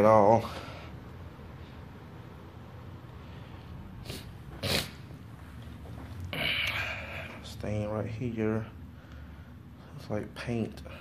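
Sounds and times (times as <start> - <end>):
breathy nose snorts: 4.0 - 5.1.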